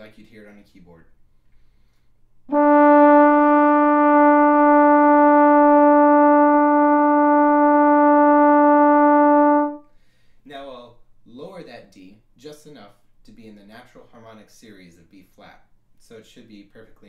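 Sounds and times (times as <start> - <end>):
trombone holding a note: 2.5 - 9.8.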